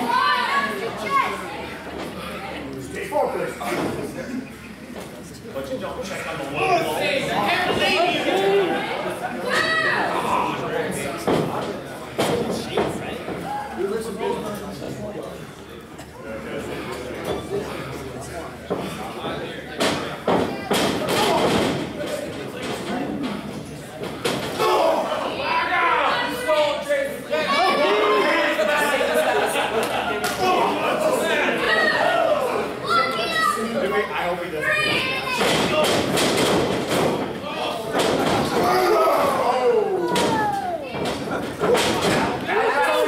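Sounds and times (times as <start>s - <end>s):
crowd voices: 0.0s - 43.0s
audience voices calling out: 24.5s - 29.2s, 37.4s - 43.0s.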